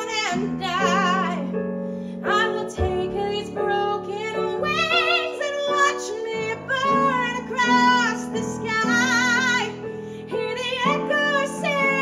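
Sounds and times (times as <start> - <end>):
woman singing with vibrato: 0.0 - 1.4, 2.3 - 12.0
piano accompaniment: 0.0 - 12.0.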